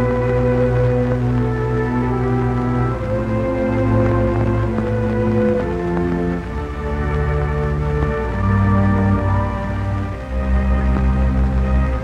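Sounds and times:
slow sustained film score chords: 0:00.0 - 0:12.0.

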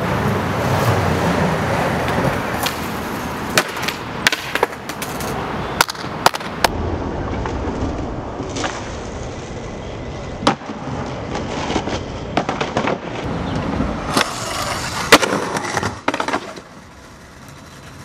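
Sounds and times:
skateboard clacking on ground: 0:00.0 - 0:09.0, 0:10.4 - 0:18.0
skateboard wheels rolling on concrete: 0:00.0 - 0:18.0.

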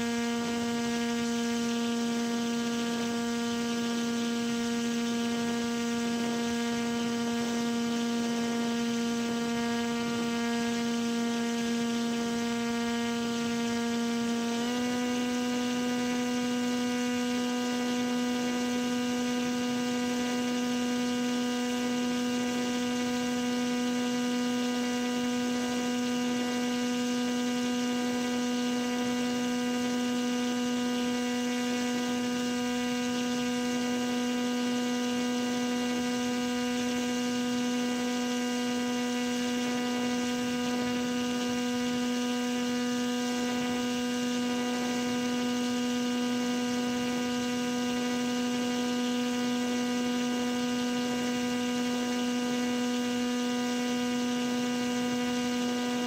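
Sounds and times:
model aircraft motor and propeller: 0:00.0 - 0:56.0.

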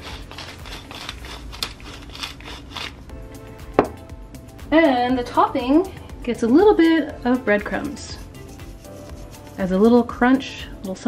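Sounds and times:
pepper mill grinding: 0:00.0 - 0:03.1, 0:07.6 - 0:10.1
background music: 0:00.0 - 0:11.0.

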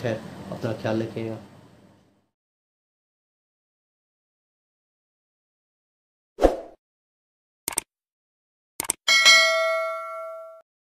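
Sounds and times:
bell ding: 0:09.1 - 0:10.6.

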